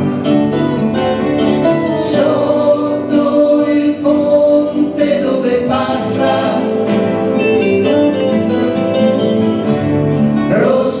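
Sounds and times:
guitar strumming: 0.0s - 11.0s
live band music: 0.0s - 11.0s.

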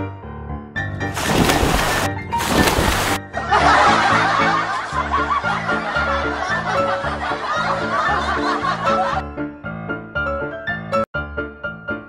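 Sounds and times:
laughter: 3.3s - 9.2s.

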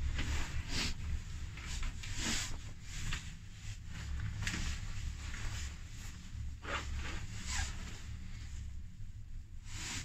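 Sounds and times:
rustling swish: 0.0s - 8.6s.

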